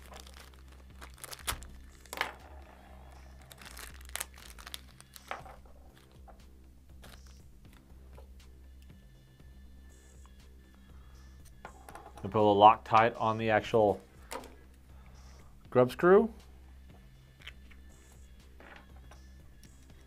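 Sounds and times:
plastic bag crinkling: 0.0 - 1.7, 3.4 - 5.3.

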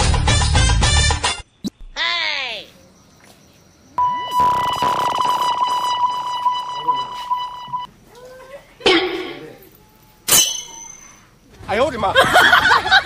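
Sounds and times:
high electronic beep: 4.0 - 7.9.

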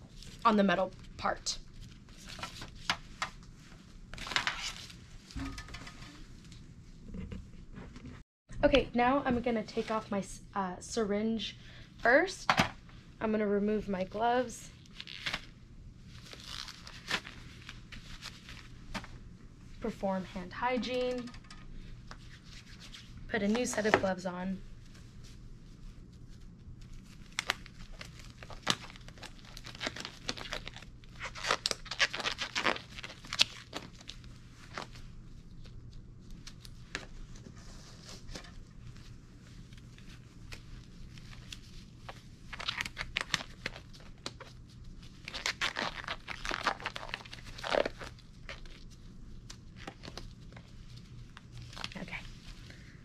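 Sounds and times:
exam gloves stretching and snapping: 14.9 - 15.5, 27.0 - 35.0, 40.5 - 50.6.

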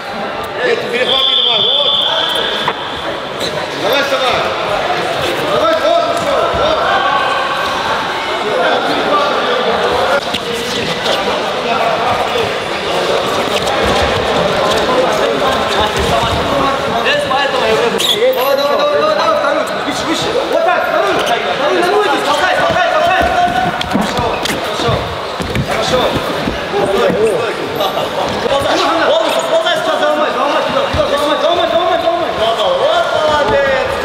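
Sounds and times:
indistinct voices of many people: 0.0 - 34.0.

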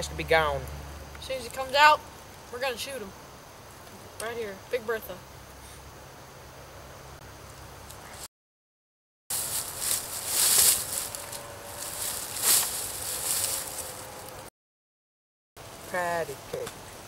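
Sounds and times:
dry leaves rustling and crunching: 9.3 - 14.5.

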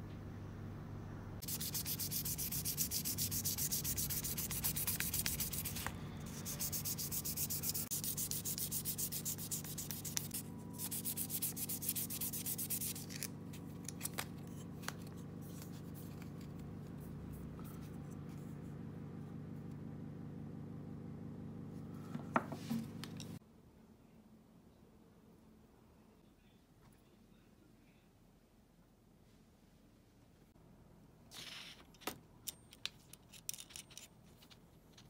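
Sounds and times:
sandpaper rubbing wood: 1.4 - 13.3.

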